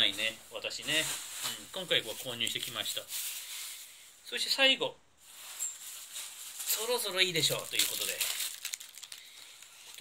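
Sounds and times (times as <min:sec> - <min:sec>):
plastic bags crinkling: 0:00.0 - 0:03.9, 0:05.2 - 0:10.0.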